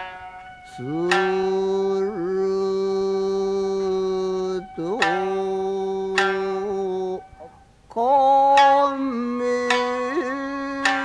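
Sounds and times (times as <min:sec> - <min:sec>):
person chanting a long low note: 0:00.6 - 0:07.5, 0:09.1 - 0:11.0.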